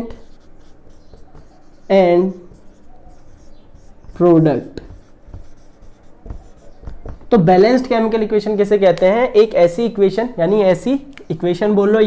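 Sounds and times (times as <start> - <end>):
marker writing on whiteboard: 0.0 - 7.9.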